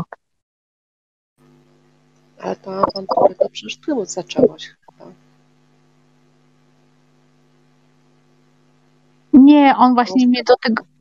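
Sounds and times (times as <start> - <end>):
faint mains hum: 1.4 - 11.0.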